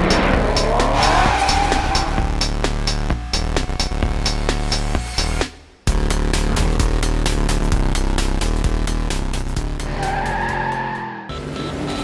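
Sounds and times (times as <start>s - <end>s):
tire squeal sound effect: 0.0s - 3.2s, 9.8s - 12.0s
music with a steady beat: 0.0s - 10.0s.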